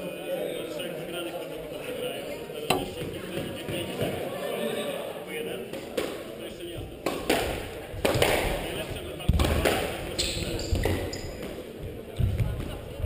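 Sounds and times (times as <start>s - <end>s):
squash ball hits: 2.7s - 4.2s.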